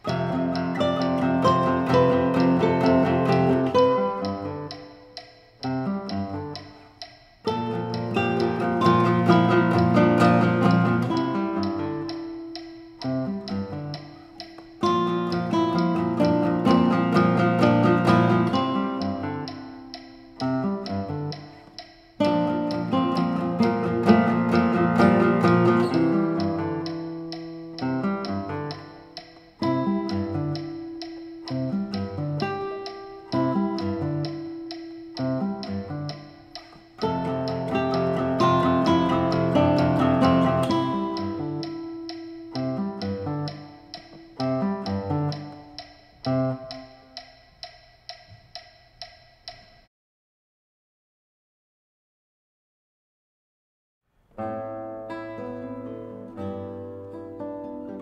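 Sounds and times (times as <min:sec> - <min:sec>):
classical guitars playing: 0:00.0 - 0:47.3, 0:54.4 - 0:58.0.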